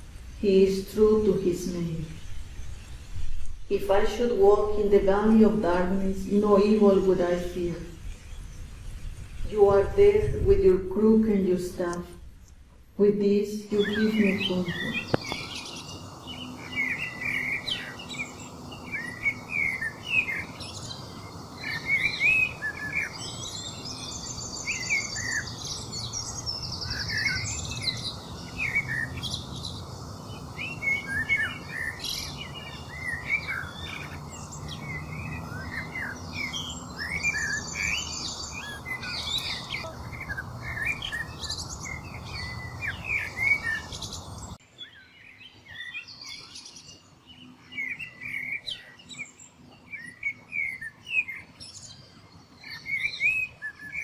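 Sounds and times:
low background hiss: 0.0s - 54.0s
small birds chirping and singing: 0.0s - 54.0s
rapid high bird trill: 13.7s - 44.5s.

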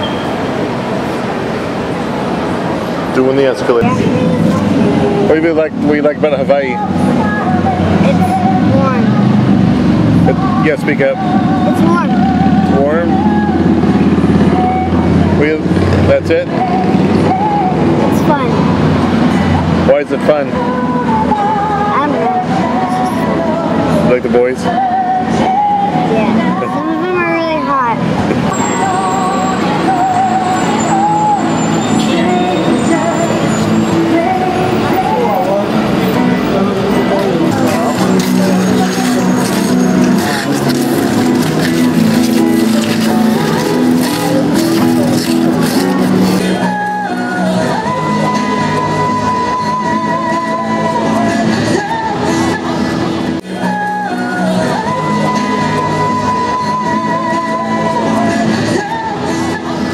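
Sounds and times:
people's voices: 0.0s - 59.9s
street traffic: 0.0s - 59.9s
vehicle engine running: 28.0s - 49.2s.

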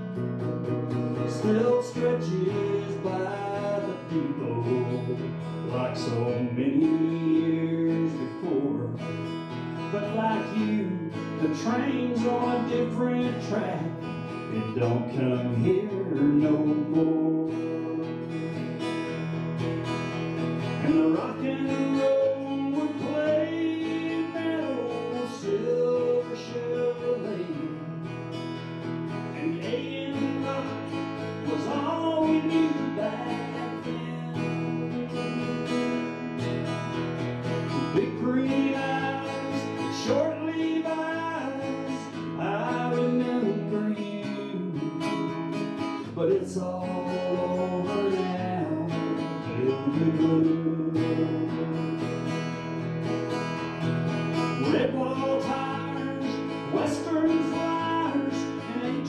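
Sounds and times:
acoustic guitar strumming: 0.0s - 59.0s
sliding guitar melody: 0.0s - 59.0s.

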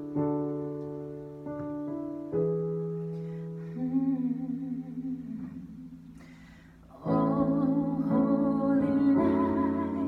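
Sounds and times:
digital piano chords: 0.0s - 5.3s, 6.8s - 10.0s
woman singing with vibrato: 3.8s - 6.0s, 6.9s - 10.0s.

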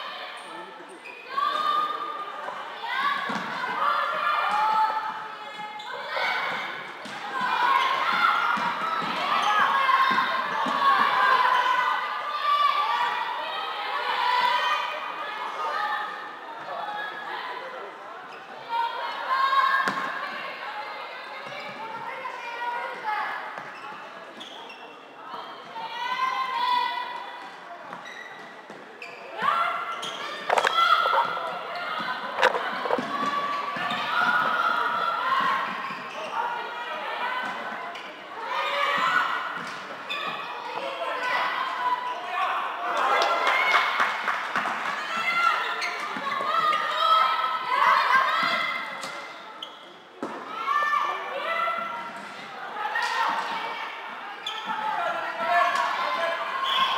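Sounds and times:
players calling and shouting: 29.0s - 44.0s.

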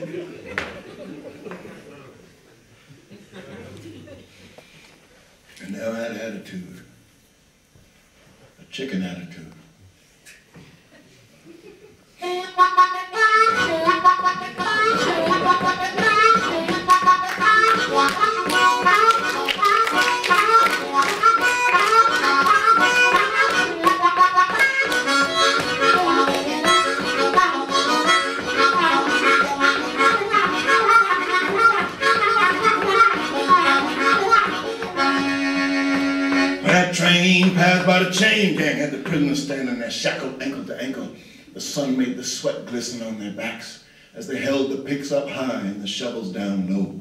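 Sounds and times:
blues harmonica: 12.2s - 38.2s
man's voice: 36.6s - 47.0s.

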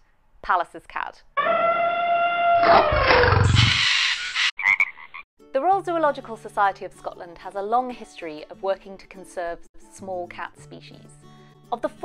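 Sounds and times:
low growling roar with falling tone: 1.8s - 3.8s.

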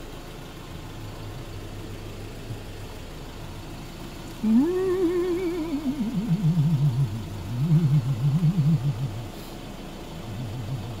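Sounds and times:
diesel engine idling: 0.0s - 11.0s
person humming a tune: 4.4s - 9.4s, 10.3s - 11.0s.

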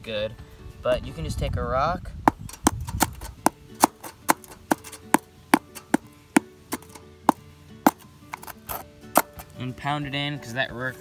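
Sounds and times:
rock pounding staples: 2.3s - 8.5s.

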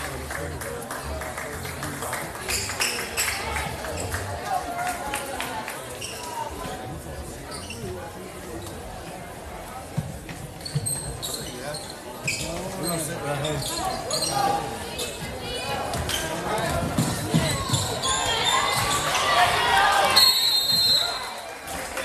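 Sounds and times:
sneakers squeaking: 6.0s - 6.8s, 7.4s - 8.9s, 9.8s - 21.3s
players and crowd shouting: 13.7s - 21.5s.

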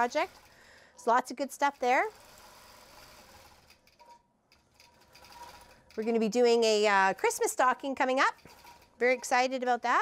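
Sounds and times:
faint quilting machine stitching: 0.0s - 0.6s, 1.5s - 4.1s, 4.7s - 7.3s, 8.3s - 9.4s.

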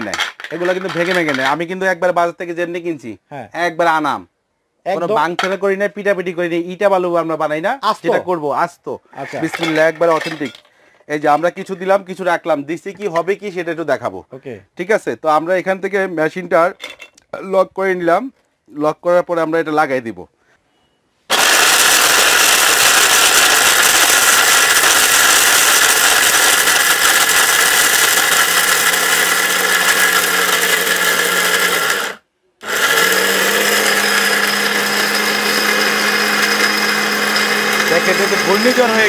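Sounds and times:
mixer grinder motor running: 21.3s - 39.0s.

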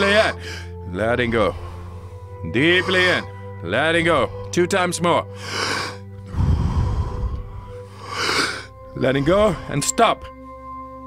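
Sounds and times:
soft background music: 0.0s - 11.0s
man breathing out: 5.4s - 8.8s.

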